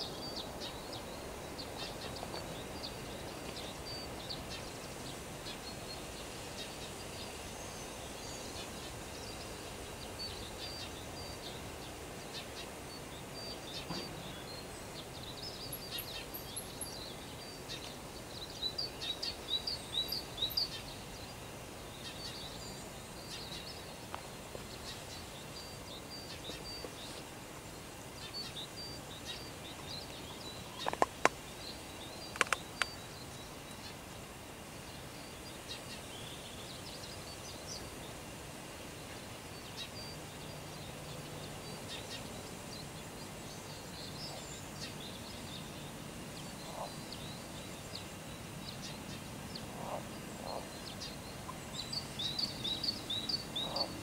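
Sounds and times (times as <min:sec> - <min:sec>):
birds chirping: 0:00.0 - 0:38.1, 0:38.9 - 0:54.0
outdoor hush: 0:00.0 - 0:54.0.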